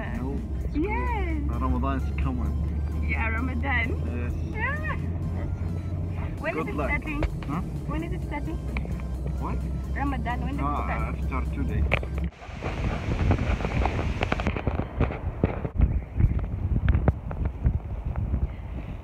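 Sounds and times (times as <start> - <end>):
vehicle engine hum inside cabin: 0.0 - 19.0
wind buffeting microphone: 11.7 - 19.0.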